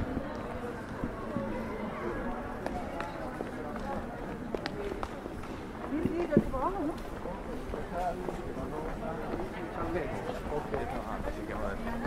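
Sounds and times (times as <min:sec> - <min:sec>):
footsteps on stone paving: 0:00.0 - 0:11.4
low city background noise: 0:00.0 - 0:12.0
indistinct voices in conversation: 0:00.7 - 0:12.0.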